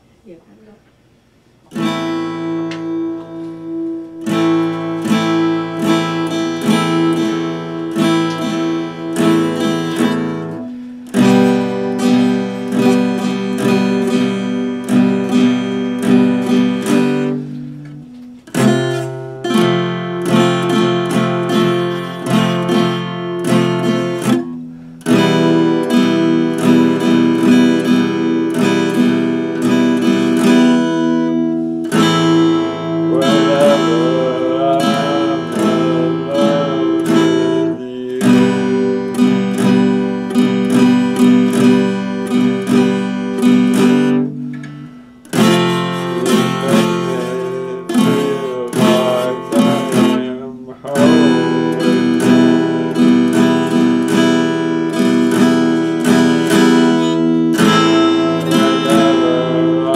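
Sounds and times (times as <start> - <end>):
acoustic guitar strumming chords: 1.4 - 59.9.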